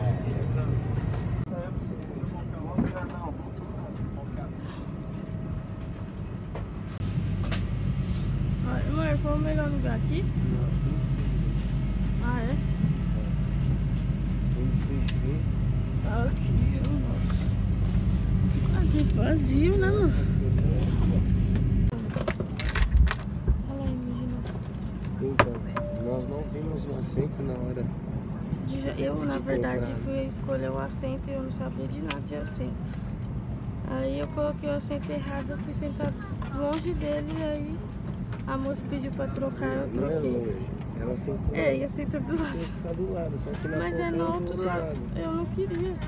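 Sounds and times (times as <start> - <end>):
passengers murmuring: 0.0 - 7.0, 7.7 - 22.7, 23.6 - 46.0
airliner cabin hum: 0.0 - 46.0.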